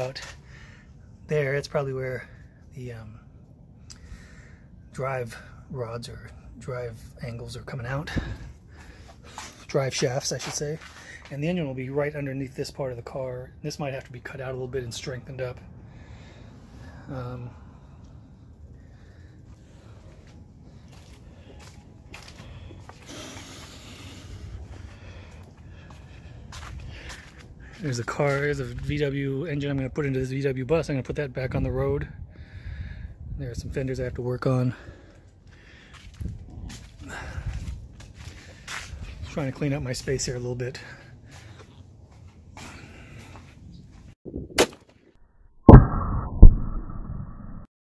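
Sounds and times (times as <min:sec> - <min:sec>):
footsteps: 0:19.5 - 0:28.8
rumbling noise: 0:45.3 - 0:47.7.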